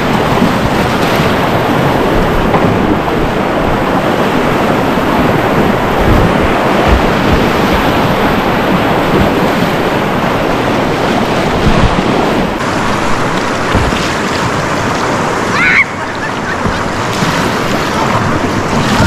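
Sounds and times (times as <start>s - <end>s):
river whitewater rushing: 0.0s - 19.0s
water churning around kayak hull: 0.0s - 19.0s.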